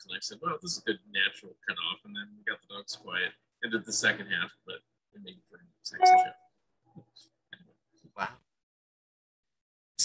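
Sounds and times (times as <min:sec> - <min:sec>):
person's voice: 0:05.2 - 0:06.3.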